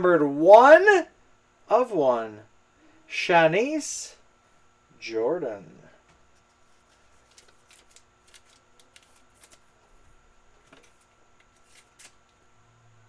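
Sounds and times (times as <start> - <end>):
trading cards rustling and ticking: 6.4 - 12.4.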